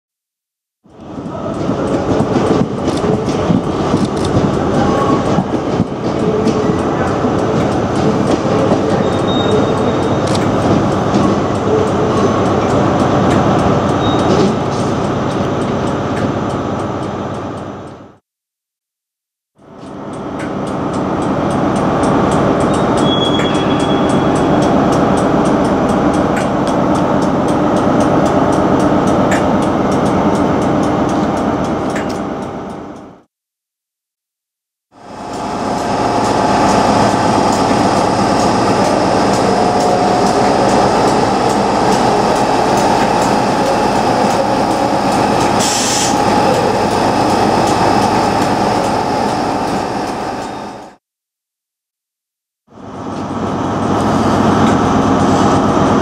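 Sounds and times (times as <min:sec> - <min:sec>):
locomotive cooling fans droning: 0:00.9 - 0:18.2, 0:19.6 - 0:33.2, 0:35.0 - 0:51.0, 0:52.7 - 0:56.0.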